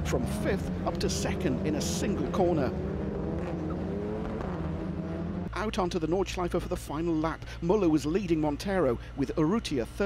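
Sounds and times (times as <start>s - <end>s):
racing car engines: 0.0s - 6.1s.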